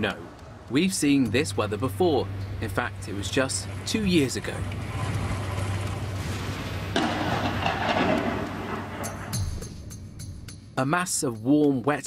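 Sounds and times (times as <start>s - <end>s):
road traffic hum: 0.0s - 9.4s
heavy rain: 3.6s - 9.4s.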